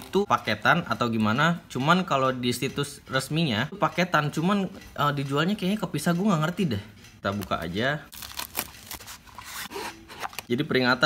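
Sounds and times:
cardboard and paper rustling: 8.1s - 10.5s
seal sticker peeling: 8.1s - 10.5s.

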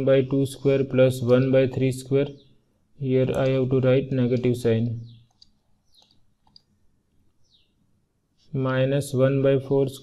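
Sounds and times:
computer mouse clicks: 3.3s - 3.6s, 4.3s - 6.8s.

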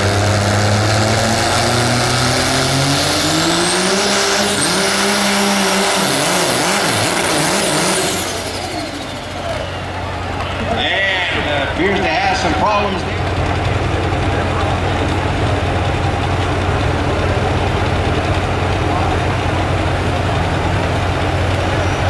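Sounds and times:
diesel pickup engine at full throttle: 0.0s - 22.0s.

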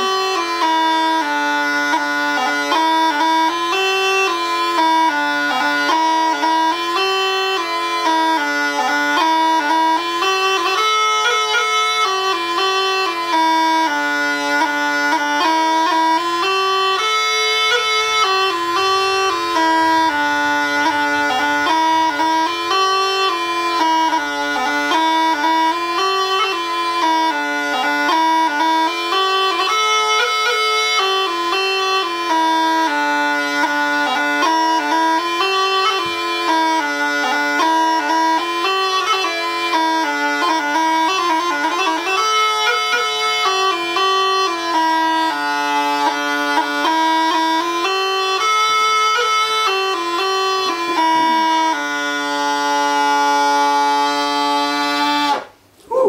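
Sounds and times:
bagpipe tune over drone: 0.0s - 55.5s.

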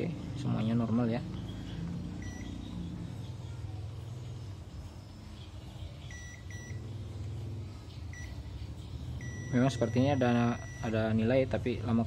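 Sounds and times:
steady low hum: 0.0s - 12.0s
multimeter short beeps: 2.2s - 2.6s, 6.1s - 6.8s, 9.2s - 11.0s.

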